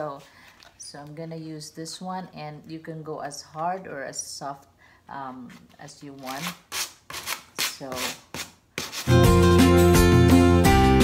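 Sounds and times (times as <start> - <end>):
sandpaper rubbing on wood: 6.2 - 9.2
music: 9.0 - 11.0.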